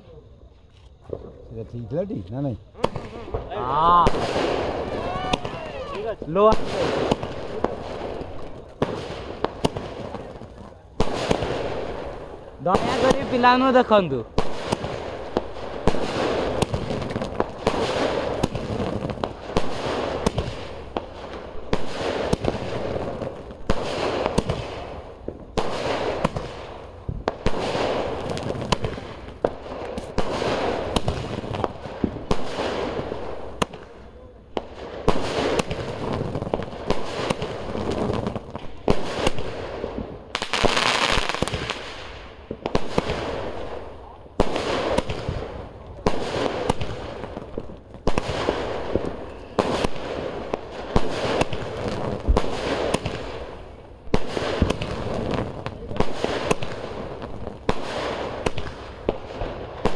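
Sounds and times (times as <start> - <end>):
fireworks bangs and crackles: 0.0 - 59.9.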